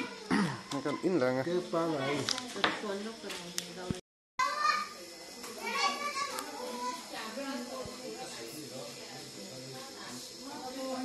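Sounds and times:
young children chattering: 0.0 - 3.2, 4.4 - 11.0.

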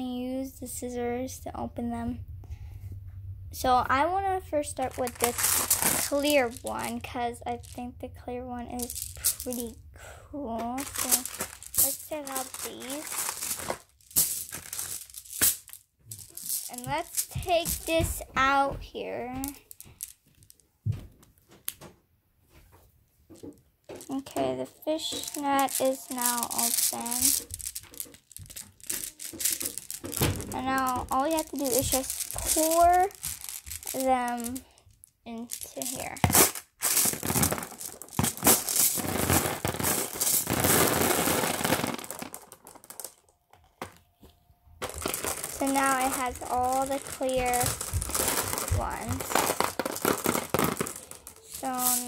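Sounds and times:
marbles clicking: 4.7 - 7.9, 8.7 - 9.8, 10.8 - 18.3, 19.3 - 20.6, 23.3 - 44.0, 44.8 - 52.0
mesh bag rustling: 4.8 - 6.9, 10.8 - 18.0, 25.1 - 34.6, 35.4 - 43.2, 44.8 - 52.0.

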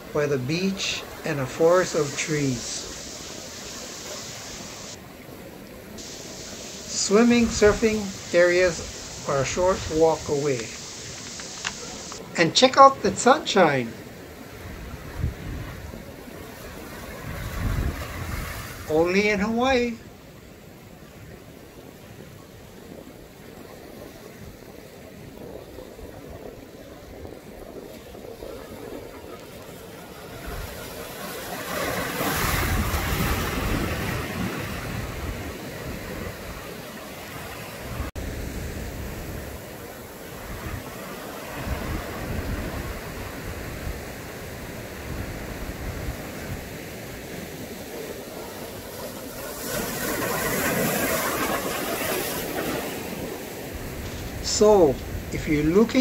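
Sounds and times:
ocean surf breaking on rocks: 0.0 - 56.0.

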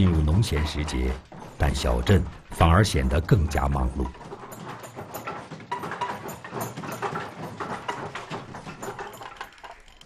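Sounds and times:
wooden hand looms clacking: 0.0 - 10.0.

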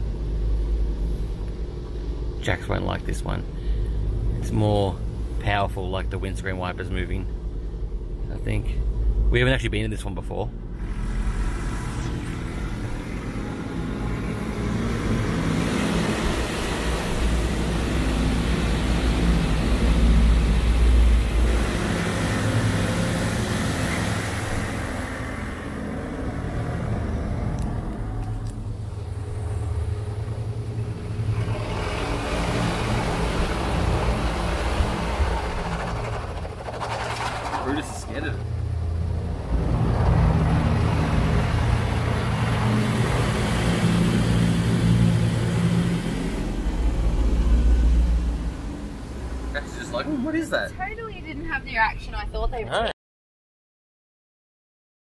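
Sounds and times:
low machinery rumble: 0.0 - 52.9.

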